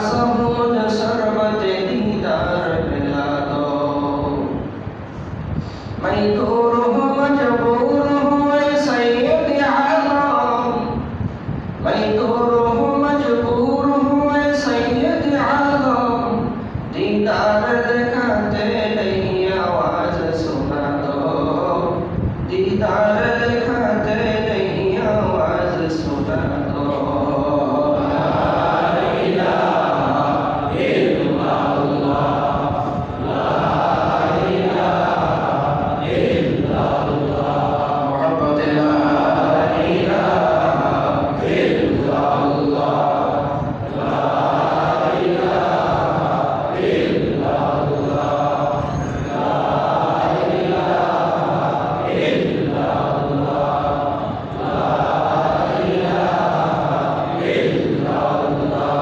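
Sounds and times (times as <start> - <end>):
person chanting devotional recitation: 0.0 - 4.8, 5.6 - 11.2, 11.8 - 59.0.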